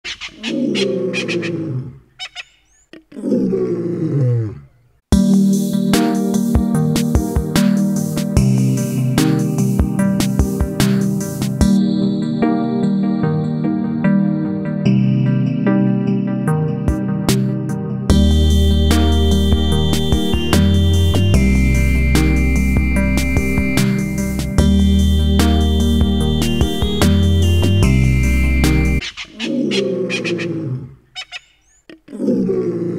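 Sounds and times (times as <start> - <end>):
short animal calls: 0.0 - 1.6
deep wild animal call: 0.0 - 4.9, 27.1 - 32.9
high chirp: 18.1 - 29.3.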